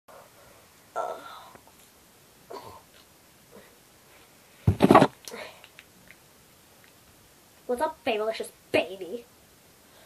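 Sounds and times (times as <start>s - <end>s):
faint room noise: 0.1s - 10.0s.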